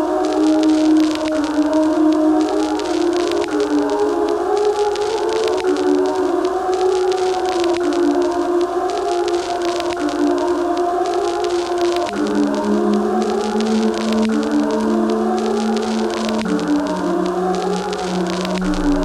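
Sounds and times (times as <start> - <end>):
ambient music with sliding tones: 0.0 - 19.0.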